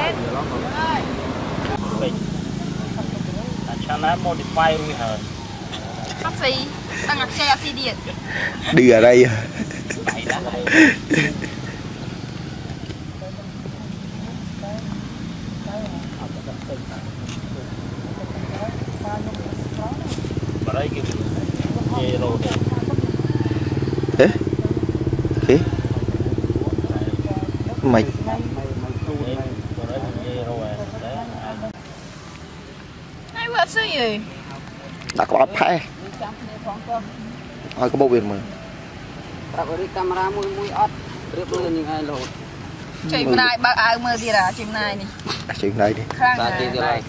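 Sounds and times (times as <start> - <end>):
small engine droning: 0.0 - 31.7
steady low hum: 16.4 - 31.7.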